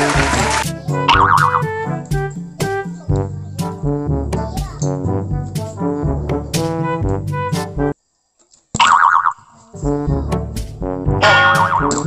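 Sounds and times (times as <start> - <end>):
brass background music: 0.0 - 8.0, 9.8 - 12.0
cartoon boing with wobbling pitch: 0.8 - 1.7, 11.2 - 12.0.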